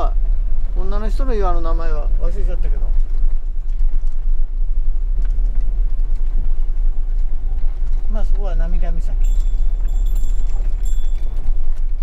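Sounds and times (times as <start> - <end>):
tires on gravel: 0.0 - 12.0
van engine rumbling: 0.0 - 12.0.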